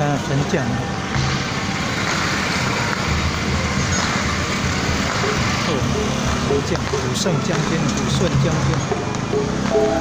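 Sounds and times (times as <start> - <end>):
street noise: 0.0 - 10.0
scooter engine passing by: 9.2 - 10.0.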